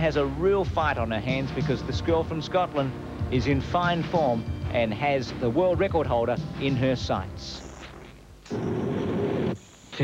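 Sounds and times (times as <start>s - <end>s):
high-pitched whine: 7.2s - 10.0s.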